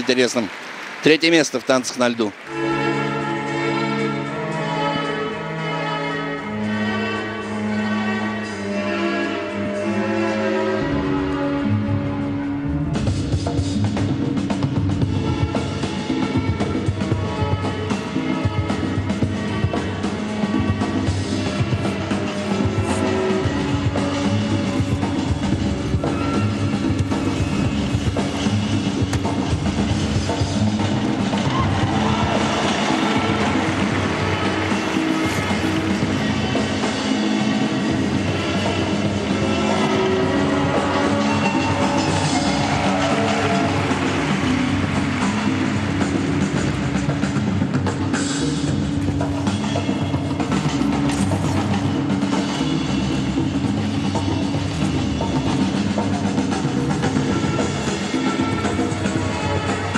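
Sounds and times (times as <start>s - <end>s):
music with drums and bass: 12.8s - 39.4s, 40.6s - 59.9s.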